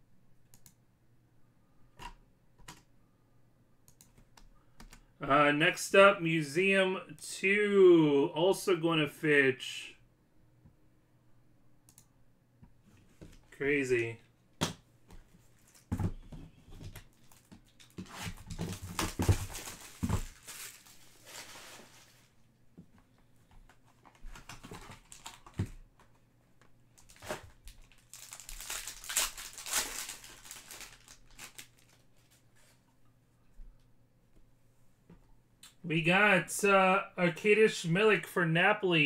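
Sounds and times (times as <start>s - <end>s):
foil wrapper crinkling: 17.1s - 22.3s, 27.0s - 32.4s.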